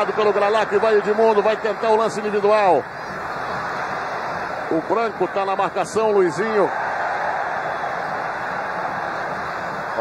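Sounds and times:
stadium crowd roar: 0:00.0 - 0:10.0.

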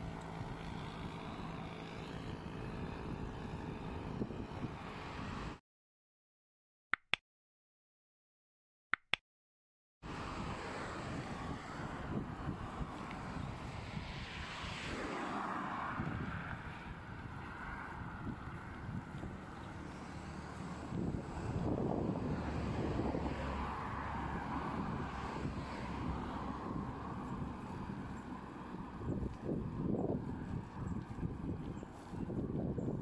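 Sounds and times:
wind noise on microphone: 0:00.0 - 0:05.6, 0:10.1 - 0:33.0
cars passing: 0:10.1 - 0:32.8.

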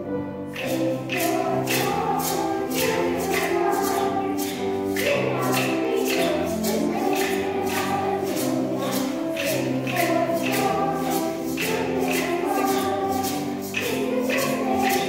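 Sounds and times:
children's choir singing: 0:00.0 - 0:15.0
instrumental accompaniment: 0:00.0 - 0:15.0
sharp percussion beat: 0:00.6 - 0:15.0.

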